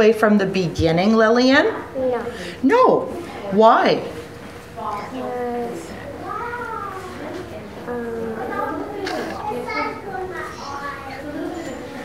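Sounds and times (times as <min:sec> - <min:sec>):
young child speaking: 0:01.8 - 0:02.4, 0:04.8 - 0:12.0.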